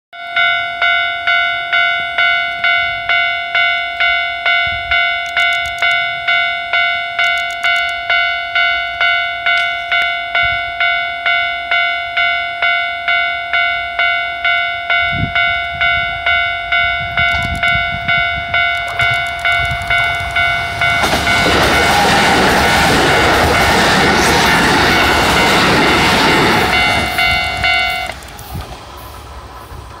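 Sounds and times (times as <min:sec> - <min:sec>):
level crossing bell ringing: 0:00.2 - 0:28.2
train passing with rushing rumble: 0:07.9 - 0:30.0.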